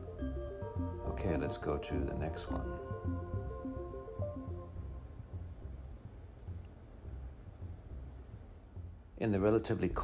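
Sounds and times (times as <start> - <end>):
faint clicks: 6.3 - 6.8.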